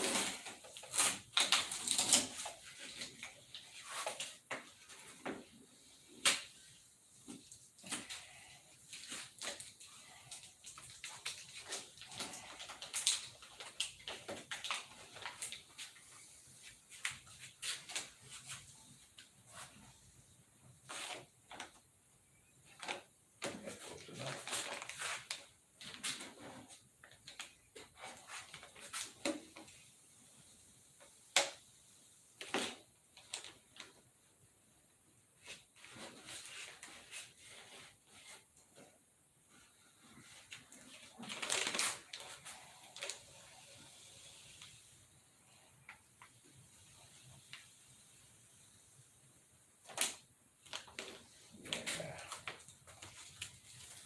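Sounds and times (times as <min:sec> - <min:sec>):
masking tape rustling and crinkling: 0:00.0 - 0:54.0.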